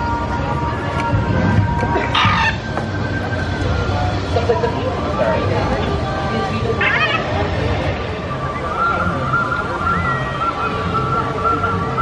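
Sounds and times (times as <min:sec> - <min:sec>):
crowd chatter: 0:00.0 - 0:12.0
harsh squawking calls: 0:06.8 - 0:07.4.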